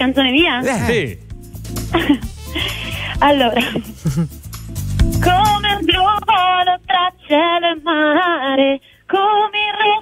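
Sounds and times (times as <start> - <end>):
woman singing over a telephone: 5.3 - 10.0.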